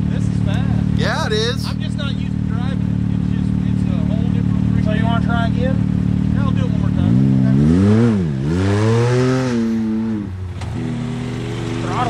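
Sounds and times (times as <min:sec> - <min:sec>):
engines idling: 0:00.0 - 0:07.5, 0:10.3 - 0:12.0.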